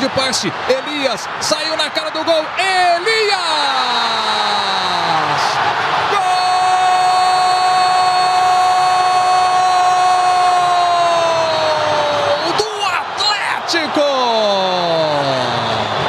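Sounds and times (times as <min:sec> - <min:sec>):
man shouting a long goal cry: 0:02.5 - 0:15.6.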